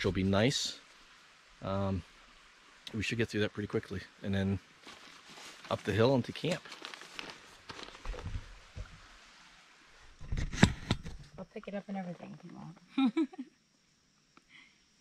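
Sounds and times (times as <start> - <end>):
microphone handling clatter: 7.8 - 9.0, 10.2 - 11.4.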